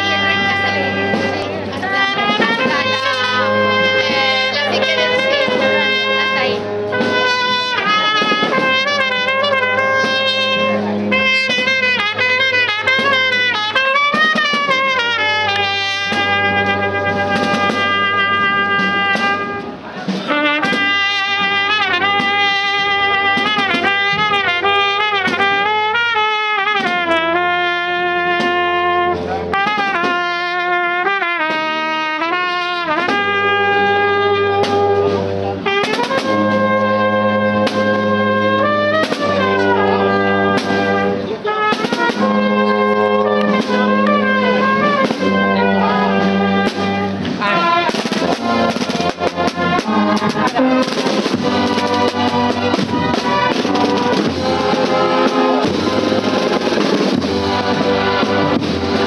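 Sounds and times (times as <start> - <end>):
marching brass band: 0.0 - 59.0
snare and bass drums: 0.0 - 59.0.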